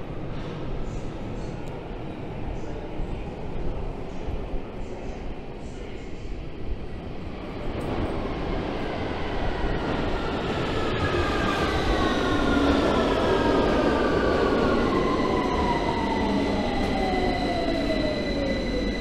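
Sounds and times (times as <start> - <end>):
train rumble: 0.0 - 19.0
train whines falling in pitch: 14.5 - 19.0.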